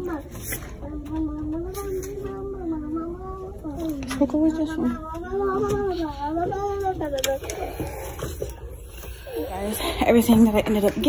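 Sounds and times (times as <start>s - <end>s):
shop background noise: 0.0s - 11.0s.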